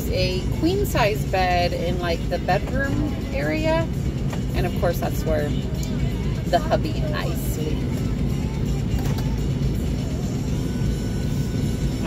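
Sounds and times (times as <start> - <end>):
music playing: 0.0 - 12.0
vehicle cabin rumble: 0.0 - 12.0.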